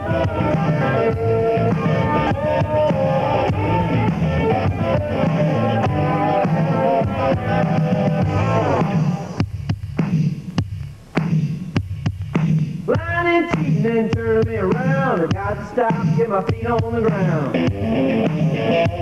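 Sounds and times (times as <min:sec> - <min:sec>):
electric guitars: 0:00.0 - 0:09.4, 0:14.8 - 0:19.0
bass notes in pulses: 0:00.0 - 0:09.5
drum beat: 0:00.0 - 0:19.0.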